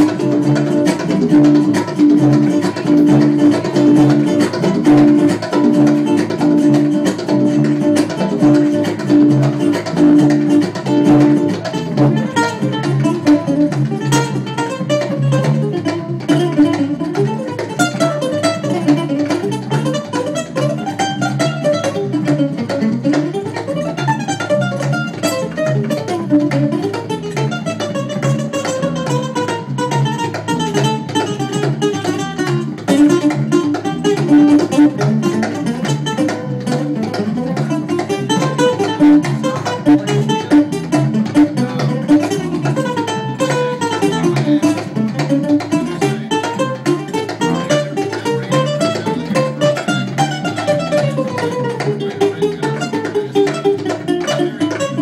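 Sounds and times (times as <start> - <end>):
fast guitar lead runs: 0.0 - 55.0
guitars jamming: 0.0 - 55.0
hand drum: 0.0 - 55.0.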